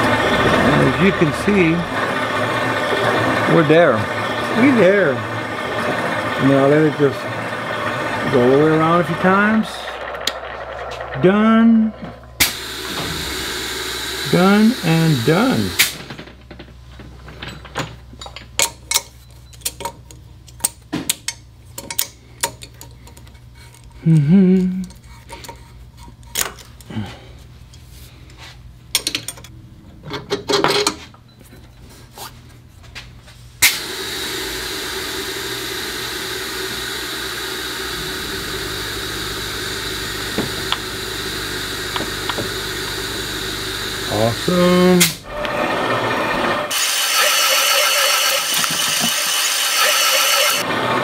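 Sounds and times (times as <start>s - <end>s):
machine running with high whine: 0.0s - 16.0s, 33.6s - 51.0s
steady low hum: 0.0s - 18.6s
metal tools clicking and clinking: 17.2s - 23.9s, 28.9s - 31.0s.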